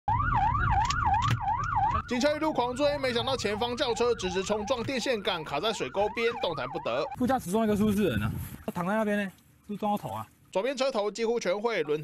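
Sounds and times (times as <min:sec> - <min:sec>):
police siren wailing: 0:00.1 - 0:07.3
road rumble: 0:00.2 - 0:10.5.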